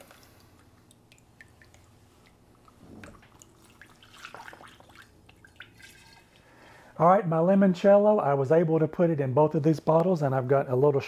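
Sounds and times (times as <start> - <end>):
liquid dripping: 0.0 - 6.9
liquid pouring through funnel: 0.0 - 6.9.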